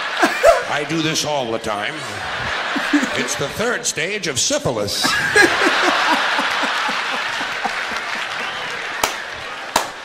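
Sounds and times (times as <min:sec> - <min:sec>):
audience laughing and applauding: 0:00.0 - 0:03.9, 0:05.0 - 0:10.0
man laughing in bursts: 0:00.1 - 0:00.7, 0:02.2 - 0:03.4, 0:05.0 - 0:08.4.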